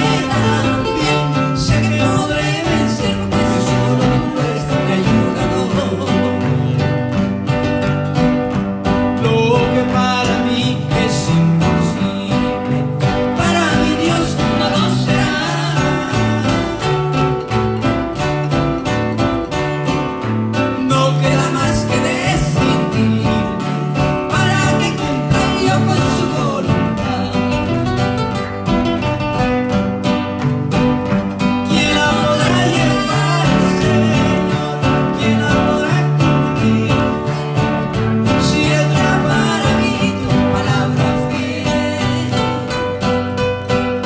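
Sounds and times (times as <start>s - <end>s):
man and woman singing together: 0.0s - 7.0s, 9.2s - 17.3s, 20.8s - 27.9s, 31.6s - 43.3s
acoustic guitars strumming: 0.0s - 44.0s.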